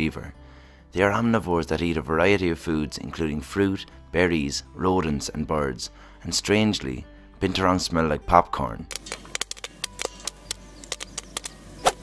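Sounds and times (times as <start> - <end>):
faint background music: 0.0 - 12.0
popcorn popping in metal pan: 8.9 - 12.0.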